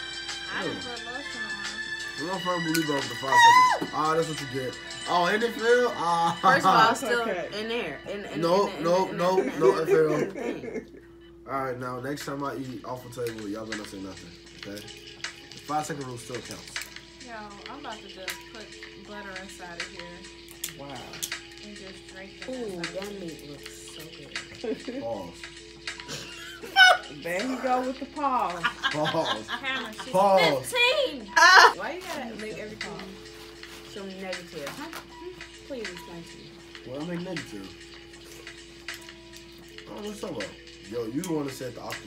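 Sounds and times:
quiet background music: 0.0 - 42.0
steady low hum: 4.1 - 42.0
crab shell cracking: 20.4 - 21.5.

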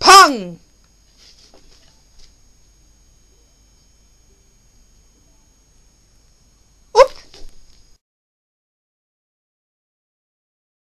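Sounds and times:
small dog barking: 7.0 - 7.5.

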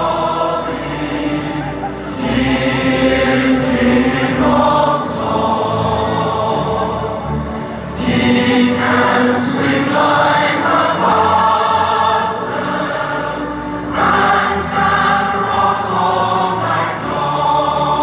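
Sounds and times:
choir singing: 0.0 - 18.0.

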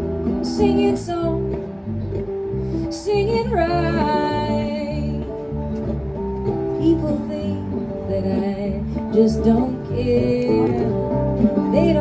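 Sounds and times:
acoustic guitar strumming: 0.0 - 12.0
electric bass line: 0.0 - 12.0.

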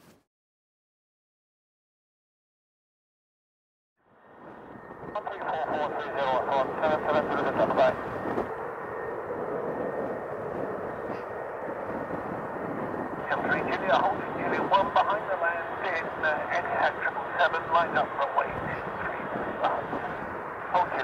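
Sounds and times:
garbled radio voice transmission: 5.1 - 8.2, 13.2 - 21.0
radio static: 5.1 - 8.5, 13.2 - 21.0.

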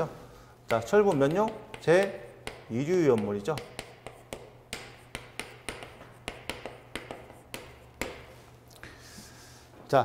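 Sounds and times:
chalk tapping on chalkboard: 0.6 - 8.5.

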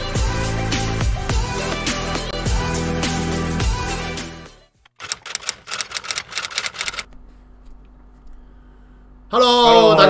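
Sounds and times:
typing clicks: 4.9 - 7.1.

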